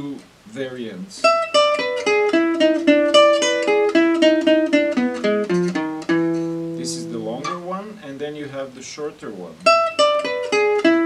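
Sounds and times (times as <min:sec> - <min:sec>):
jazz guitar picked: 0:00.0 - 0:11.0.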